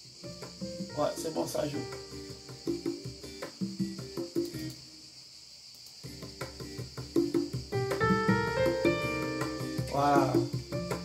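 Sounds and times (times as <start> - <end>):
rhythmic piano-like notes: 0.0 - 4.8, 6.1 - 11.0
multi-instrument song playback: 0.0 - 5.0, 6.0 - 11.0
steady high hiss: 0.0 - 11.0.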